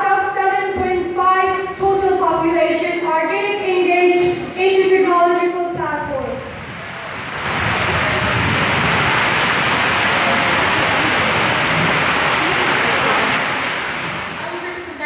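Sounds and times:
audience applauding: 6.8 - 14.8.

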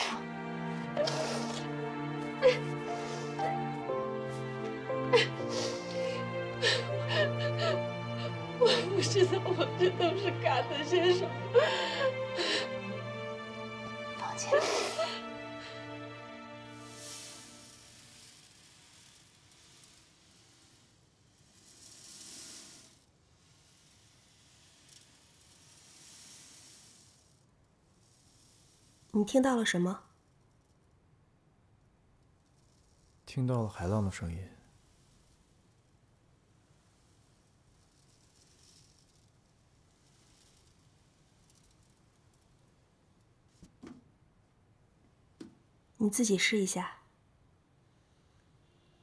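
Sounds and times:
ocean drum beads rolling: 0.0 - 10.2, 13.4 - 43.7.

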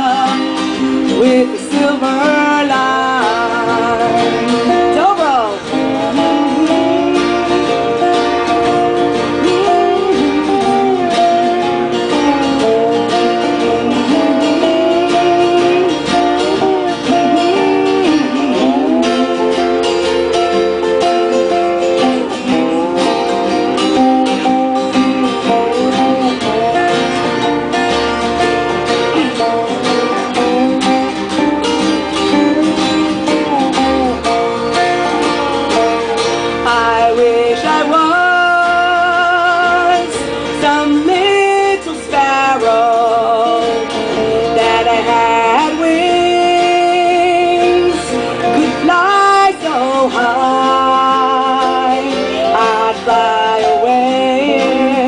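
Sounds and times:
bluegrass band playing: 0.0 - 55.0.

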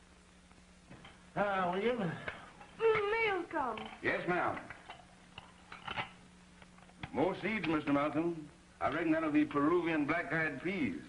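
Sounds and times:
film soundtrack hiss and hum: 0.0 - 11.0
dishes and tableware clinking: 3.8 - 6.2.

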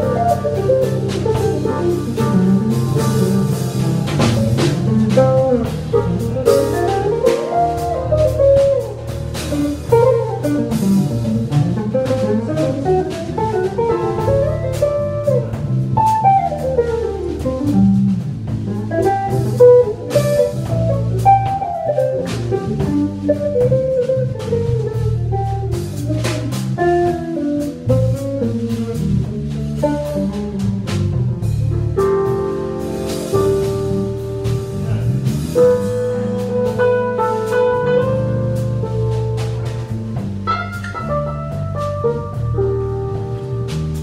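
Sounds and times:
drum kit with cymbal hits: 0.0 - 44.0
electric bass: 0.0 - 44.0.

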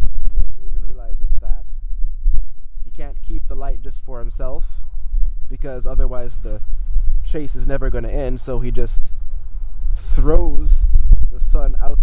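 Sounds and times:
wind buffeting microphone: 0.0 - 12.0
man talking: 0.8 - 1.8, 2.8 - 4.9, 5.5 - 9.2, 10.0 - 12.0.

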